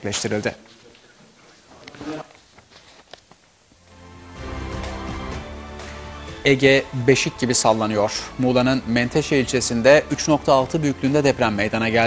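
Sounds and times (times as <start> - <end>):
voice: 0.0 - 2.4, 6.5 - 12.0.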